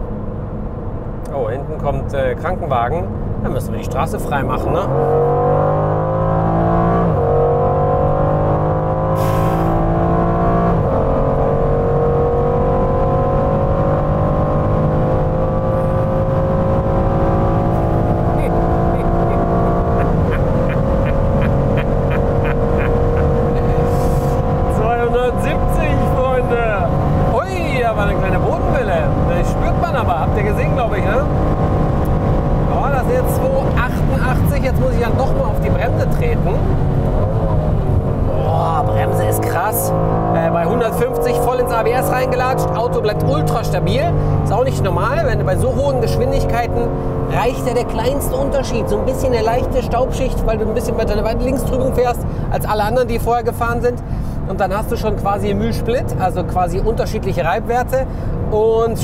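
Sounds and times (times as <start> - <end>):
car engine at full throttle: 0.0 - 59.0.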